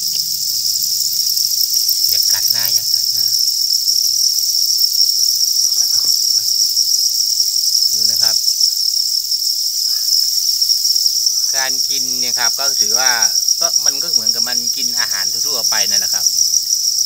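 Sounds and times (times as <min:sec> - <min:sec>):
crickets chirping: 0:00.0 - 0:17.0.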